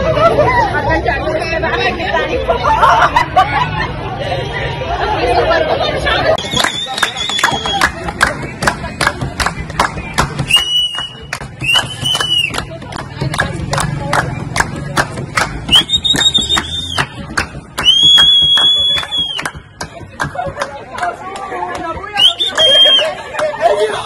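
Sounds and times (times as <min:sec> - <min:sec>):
people clapping in rhythm: 0:06.4 - 0:24.0.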